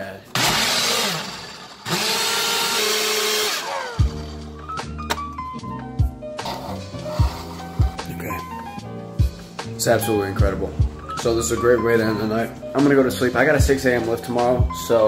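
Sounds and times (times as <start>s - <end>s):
blender whirring: 0.3s - 4.3s
background music with steady beat: 3.2s - 15.0s.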